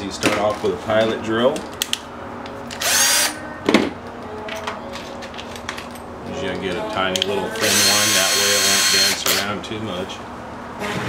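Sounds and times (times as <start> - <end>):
cordless drill whine: 2.8 - 3.4, 7.6 - 9.4.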